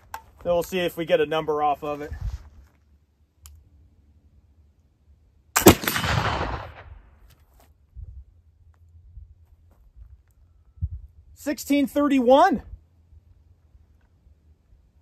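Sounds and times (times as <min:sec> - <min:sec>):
rifle shot: 0:05.6 - 0:07.1.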